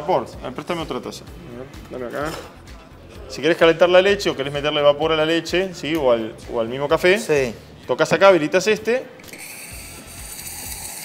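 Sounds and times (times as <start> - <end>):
steam wand hissing: 9.3 - 11.0.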